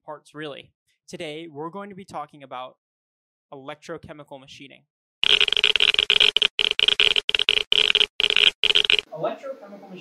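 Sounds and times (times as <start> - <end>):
stuttering static-like glitch buzz: 5.2 - 9.1.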